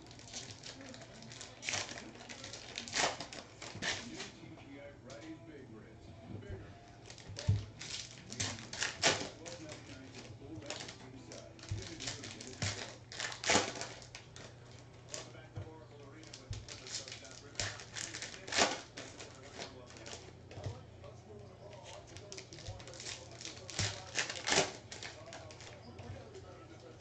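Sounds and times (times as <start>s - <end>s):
steady low hum: 0.0s - 27.0s
cards clicking and tapping: 7.0s - 15.3s, 15.9s - 20.8s, 21.8s - 26.4s.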